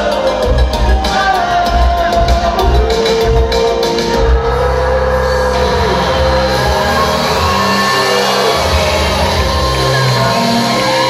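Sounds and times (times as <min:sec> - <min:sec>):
electronic keyboards: 0:00.0 - 0:11.0.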